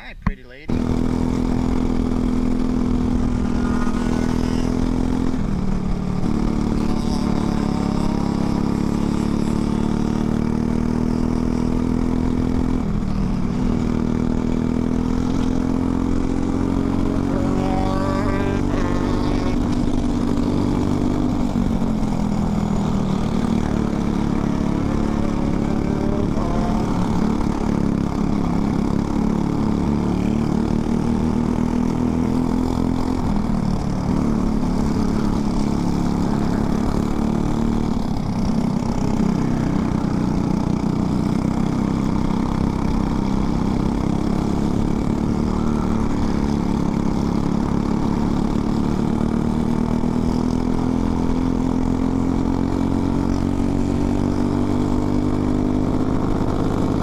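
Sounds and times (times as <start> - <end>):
kart engine running: 0.7 - 57.0.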